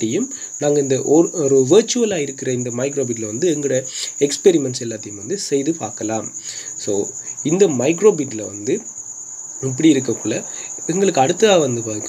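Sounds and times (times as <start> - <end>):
man speaking: 0.0 - 8.9, 9.6 - 12.0.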